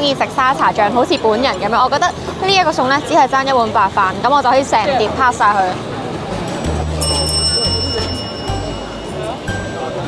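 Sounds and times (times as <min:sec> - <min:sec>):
background music with bass beat: 0:06.3 - 0:09.7
bright bell-like chime: 0:07.0 - 0:10.0.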